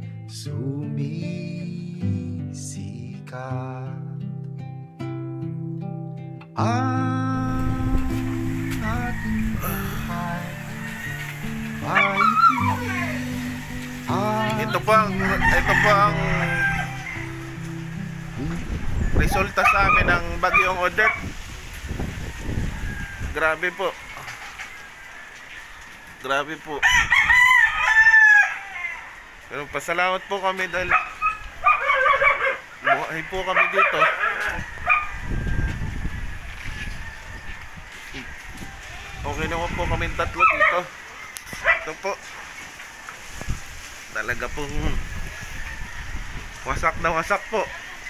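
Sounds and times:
background music with low notes: 0:00.0 - 0:19.6
microphone handling rumble: 0:07.2 - 0:10.8, 0:18.3 - 0:23.4, 0:34.4 - 0:40.4, 0:44.5 - 0:47.0
rooster crowing: 0:07.4 - 0:21.2, 0:21.8 - 0:41.9, 0:45.0 - 0:48.0.

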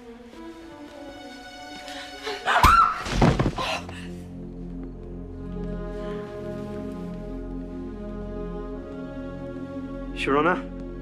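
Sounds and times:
tense score music: 0:00.0 - 0:11.0.

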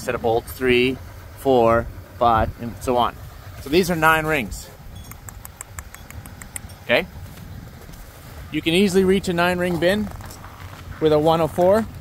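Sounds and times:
man speaking: 0:00.0 - 0:04.8, 0:06.8 - 0:07.2, 0:08.5 - 0:10.2, 0:11.0 - 0:11.9
wind rumble on microphone: 0:01.6 - 0:12.0
high-pitched clicking: 0:04.9 - 0:06.9.

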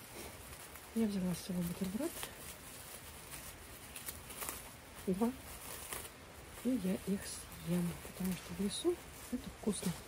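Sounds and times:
plastic wrap crinkling: 0:00.0 - 0:10.0.

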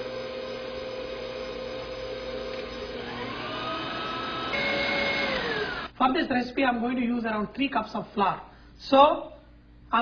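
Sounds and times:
stand mixer motor whining: 0:00.0 - 0:06.0.

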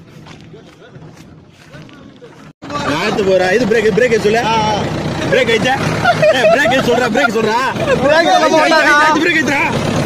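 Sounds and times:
tractor engine running: 0:00.0 - 0:10.0
men talking loudly: 0:01.6 - 0:10.0.

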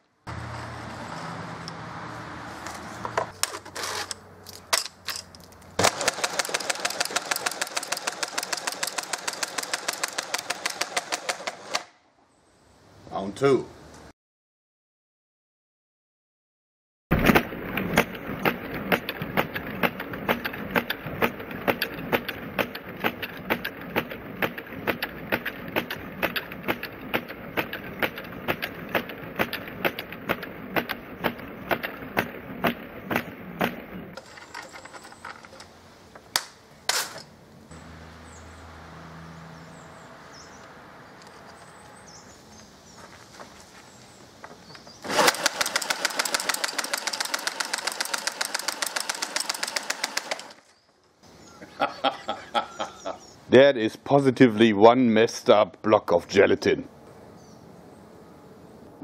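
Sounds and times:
loud clicks: 0:17.2 - 0:37.2.

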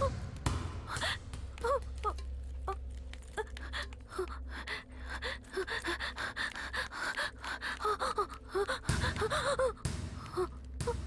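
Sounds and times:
woman gasping for breath: 0:03.4 - 0:11.0.

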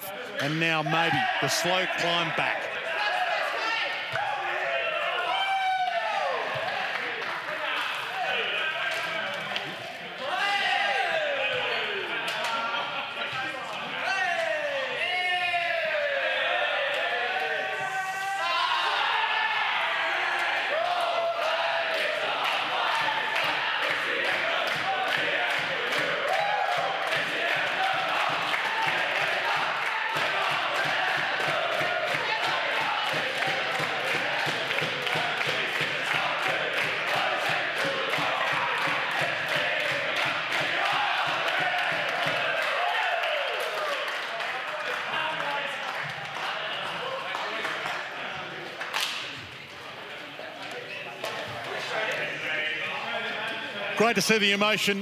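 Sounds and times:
people clapping: 0:00.0 - 0:04.6, 0:05.2 - 0:09.9, 0:11.6 - 0:14.8, 0:20.1 - 0:49.5, 0:50.6 - 0:52.4
many voices: 0:00.0 - 0:55.0
excited shouts and whoops: 0:03.0 - 0:06.5.

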